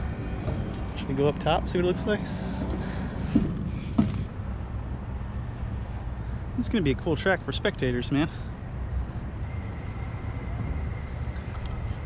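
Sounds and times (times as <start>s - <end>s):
low fluttering outdoor rumble: 0.0s - 12.0s
faint high whine: 9.3s - 12.0s.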